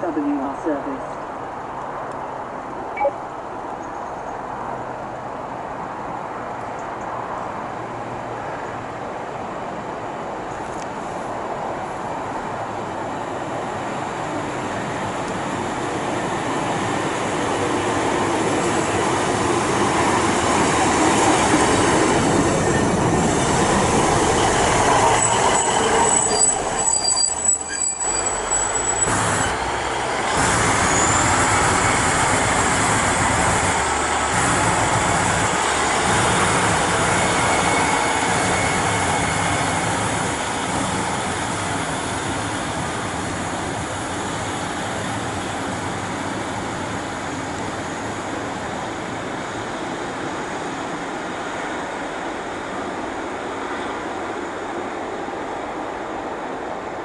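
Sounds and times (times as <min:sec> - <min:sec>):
diesel engines: 0:00.0 - 0:55.0
train wheels on rails: 0:09.8 - 0:57.0
high brake squeal: 0:25.0 - 0:29.7, 0:30.6 - 0:31.7.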